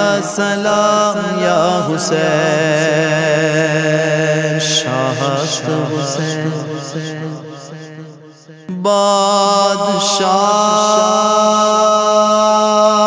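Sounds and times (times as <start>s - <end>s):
chanted wordless voices: 0.0s - 13.0s.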